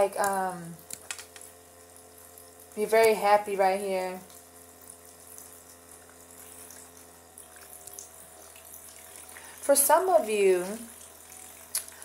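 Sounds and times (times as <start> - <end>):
faint steady hum: 0.0 - 12.0
water fountain trickling: 0.0 - 12.0.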